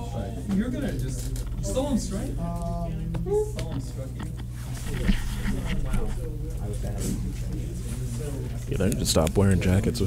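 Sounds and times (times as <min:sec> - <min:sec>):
background chatter of voices: 0:00.0 - 0:10.0
steady low hum: 0:00.0 - 0:10.0.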